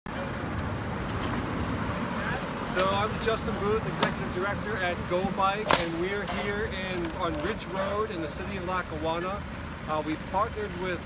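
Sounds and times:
road traffic: 0.1s - 11.0s.

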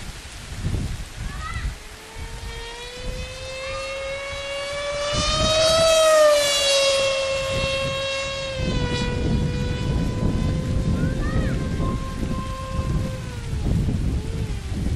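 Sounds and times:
low gusty rumble: 0.0s - 14.9s
model jet motor whining: 1.4s - 14.9s.

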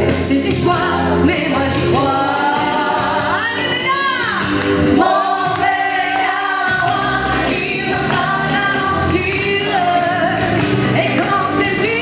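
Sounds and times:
instrumental backing: 0.0s - 12.0s
woman singing into a microphone: 0.0s - 12.0s.

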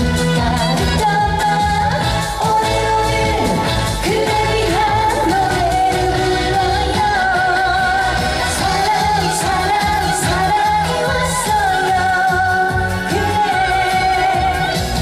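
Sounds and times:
pop backing track with beat: 0.0s - 15.0s
woman singing into microphone: 0.0s - 15.0s.

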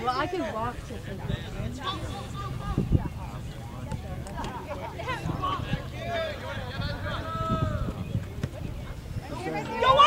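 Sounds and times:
distant shouting voices: 0.0s - 3.8s, 4.4s - 8.1s, 8.9s - 10.0s
low rumble on microphone: 0.7s - 9.6s.

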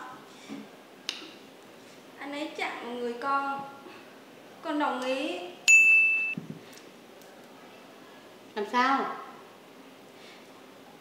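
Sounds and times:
ringing chime ding: 5.7s - 6.4s.

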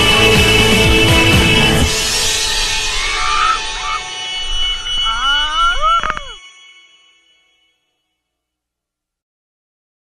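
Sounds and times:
background music: 0.0s - 7.2s.

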